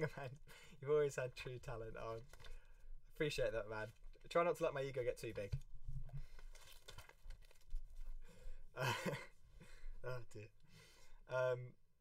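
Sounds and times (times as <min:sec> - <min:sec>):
person speaking: 0:00.0 - 0:02.4, 0:10.0 - 0:10.6.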